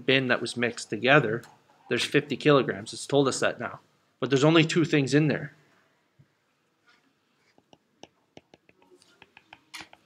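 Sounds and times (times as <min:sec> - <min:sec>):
stylus tapping on glass screen: 0:07.6 - 0:10.0.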